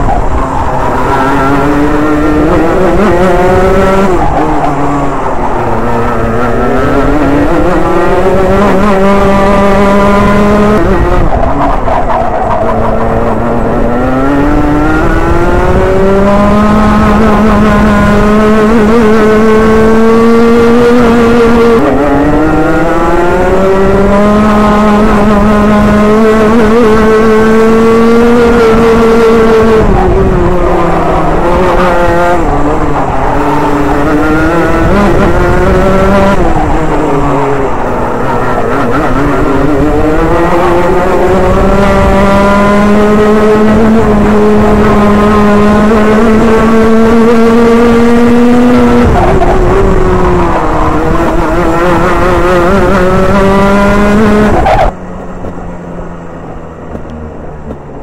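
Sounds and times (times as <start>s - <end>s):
kart two-stroke engine buzzing: 0.0s - 58.0s.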